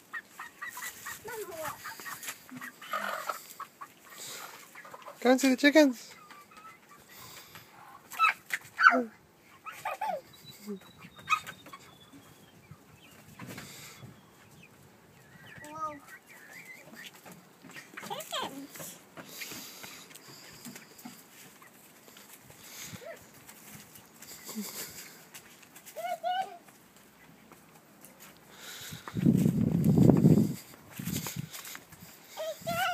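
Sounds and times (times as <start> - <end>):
hens clucking: 0.0 - 32.9
small child's voice: 1.1 - 2.1, 15.5 - 16.2, 18.0 - 19.0, 25.9 - 26.8, 32.3 - 32.9
adult laughing: 9.7 - 10.8.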